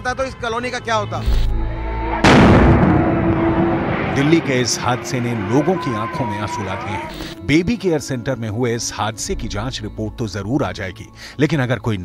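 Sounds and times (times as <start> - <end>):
loud explosion: 1.3 - 5.8.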